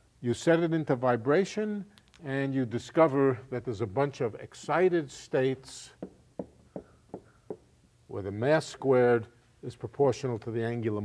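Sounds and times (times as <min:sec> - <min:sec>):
marker tapping on whiteboard: 0:06.0 - 0:07.7.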